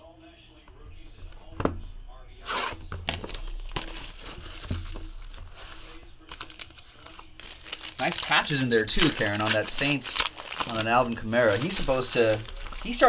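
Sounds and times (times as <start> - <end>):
rustling: 2.4 - 13.0
plastic wrapper crinkling and tearing: 3.1 - 13.0.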